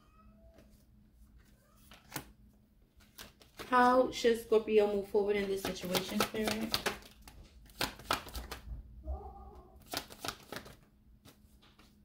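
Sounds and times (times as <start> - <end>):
faint cat meows: 0.0 - 0.7, 9.0 - 9.8.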